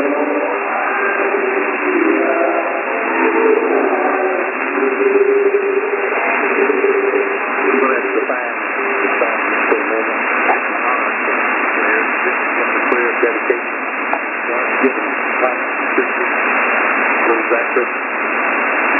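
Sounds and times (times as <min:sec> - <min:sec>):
voice with drawn-out notes: 0:00.0 - 0:13.7, 0:17.2 - 0:17.9
radio hiss: 0:00.0 - 0:18.9.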